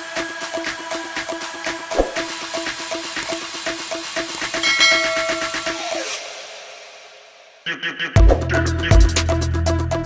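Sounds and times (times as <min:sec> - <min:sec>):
fast electronic music: 0:00.2 - 0:06.6, 0:08.2 - 0:09.4
bright bell-like chime: 0:04.6 - 0:06.1.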